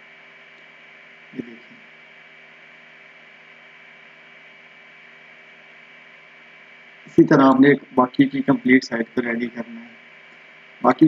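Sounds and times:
low electrical hum: 0.0 - 11.0
steady hiss: 0.0 - 11.0
thin high constant whine: 0.0 - 11.0.

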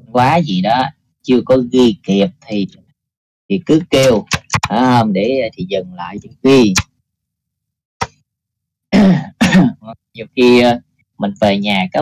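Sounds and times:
man clearing his throat: 8.9 - 9.9.

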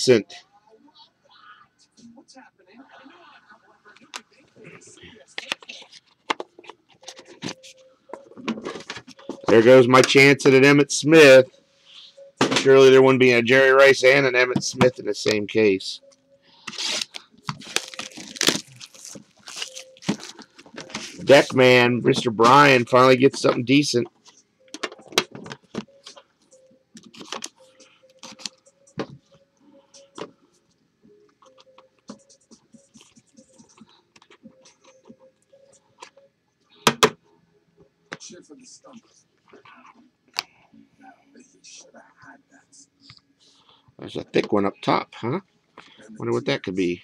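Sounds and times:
cards scraping: 16.6 - 21.5.

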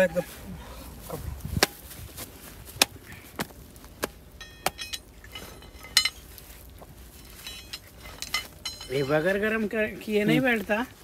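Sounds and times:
sharp metallic clinks: 4.4 - 6.4, 7.1 - 9.6.

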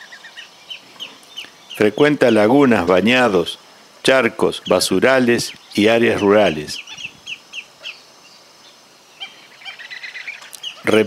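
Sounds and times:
birds calling sharp notes: 0.0 - 11.0.

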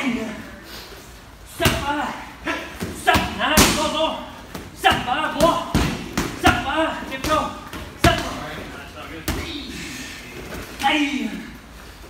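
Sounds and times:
voices: 0.0 - 11.7.

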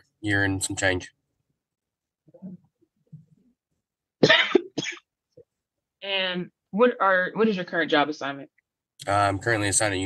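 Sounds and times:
person coughing: 4.2 - 5.1.

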